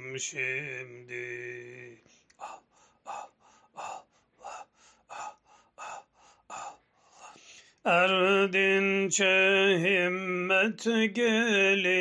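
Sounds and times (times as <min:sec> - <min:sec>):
a cappella singing: 0:00.0 - 0:02.6, 0:07.9 - 0:12.0
rhythmic breathy exhalations: 0:01.5 - 0:07.9.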